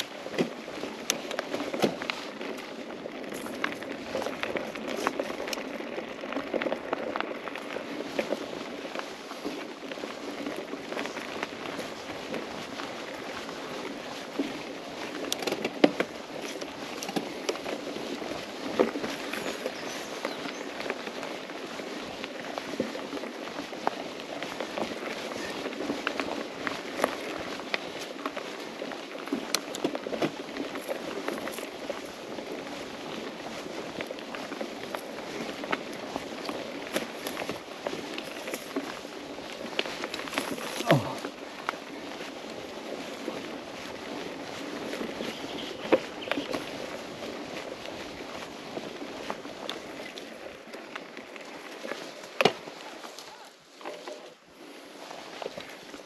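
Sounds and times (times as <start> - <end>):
bike rattling clicks and knocks: 0.0 - 52.7
bike tyres crunching on dirt: 0.0 - 56.0.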